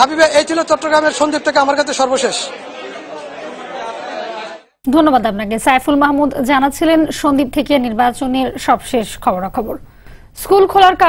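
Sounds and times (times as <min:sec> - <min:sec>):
indistinct chatter of voices: 0:00.2 - 0:04.8.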